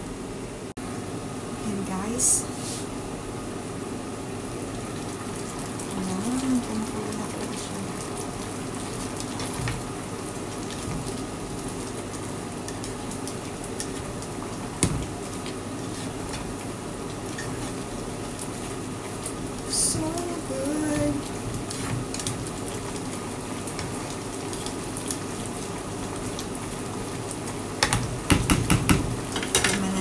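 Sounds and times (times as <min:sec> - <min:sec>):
food simmering in a pan: 0:03.0 - 0:30.0
spatula knocking pan: 0:27.8 - 0:29.8.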